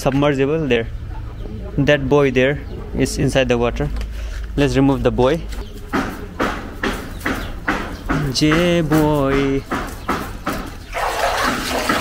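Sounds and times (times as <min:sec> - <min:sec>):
water splashing into a tank: 0:10.9 - 0:12.0.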